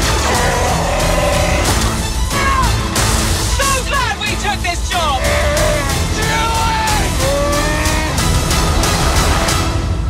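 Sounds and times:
orchestral trailer music: 0.0 - 10.0
percussion hits: 1.4 - 4.4.

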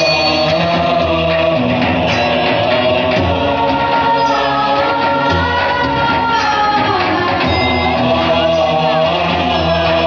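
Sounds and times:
devotional singing with instruments: 0.0 - 10.0.

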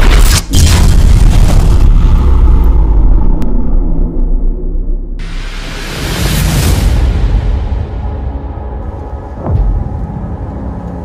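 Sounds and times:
deep boom hits: 0.5 - 5.5
low rumble: 0.5 - 11.0.

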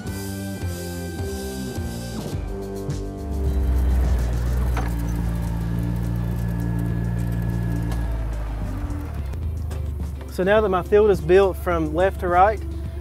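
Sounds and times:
background music: 0.0 - 13.0
utility vehicle engine running: 2.2 - 13.0.

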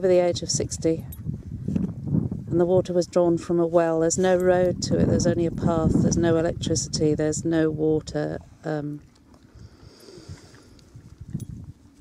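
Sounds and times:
wind rumble on microphone: 0.0 - 12.0.

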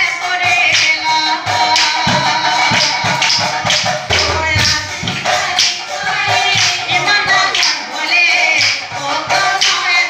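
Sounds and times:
drums beaten with sticks: 0.0 - 10.0
hand cymbals: 0.0 - 10.0
woman singing: 0.0 - 10.0.

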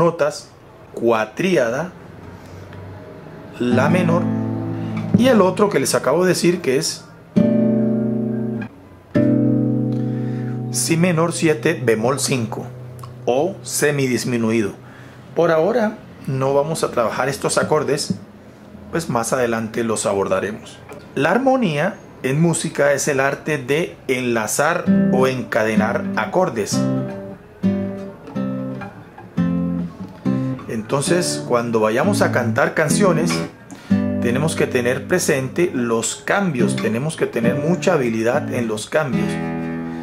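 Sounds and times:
classical guitar strumming chord: 3.7 - 6.0, 7.4 - 11.1, 24.8 - 35.6, 36.6 - 40.0.

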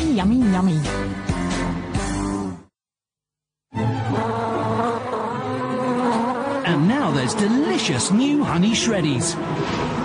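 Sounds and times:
bee buzzing: 3.8 - 9.7.

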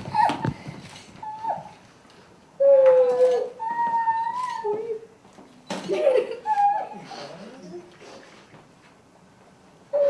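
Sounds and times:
child crying: 1.2 - 1.7, 2.6 - 5.1, 6.3 - 7.1
child sobbing: 6.2 - 7.9.

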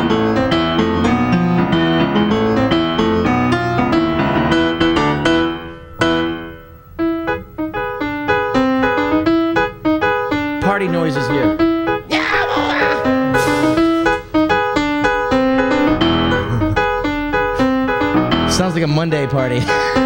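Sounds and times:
electronic keyboard piano chords: 0.0 - 20.0.

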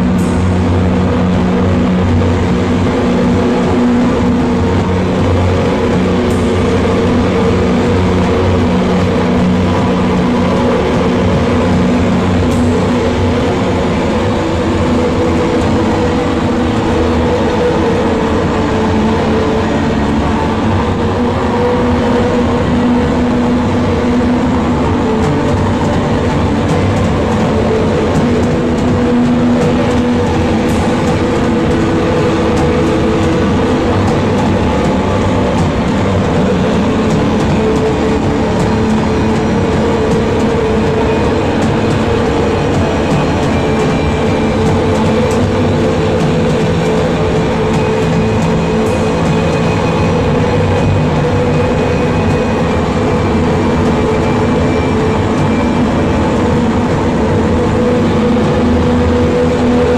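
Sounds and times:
distorted noise rock drone: 0.0 - 59.9.

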